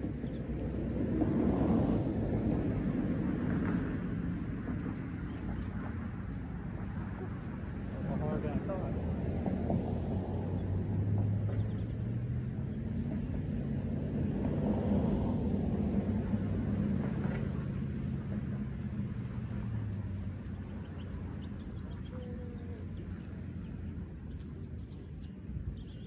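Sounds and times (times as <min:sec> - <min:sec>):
low engine hum: 0:00.0 - 0:26.0.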